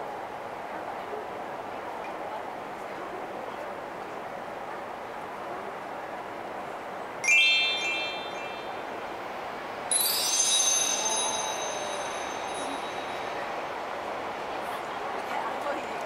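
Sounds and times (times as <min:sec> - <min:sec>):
steady background noise: 0:00.0 - 0:16.0
bell-like chime tones: 0:07.2 - 0:09.3, 0:09.9 - 0:13.6.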